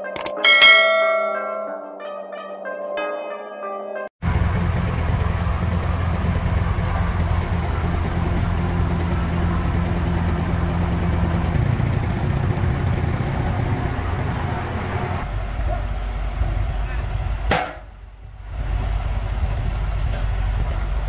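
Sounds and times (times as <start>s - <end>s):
heavy diesel engines running: 4.2s - 21.0s.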